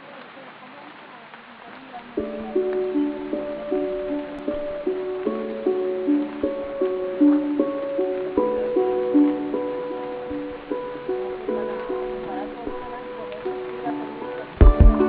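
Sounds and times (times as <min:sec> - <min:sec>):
simple melody of short notes: 0:14.6 - 0:15.0.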